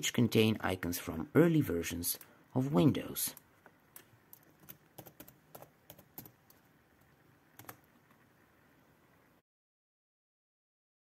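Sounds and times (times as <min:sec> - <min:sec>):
typing on computer keyboard: 0:04.0 - 0:06.7, 0:07.6 - 0:07.9.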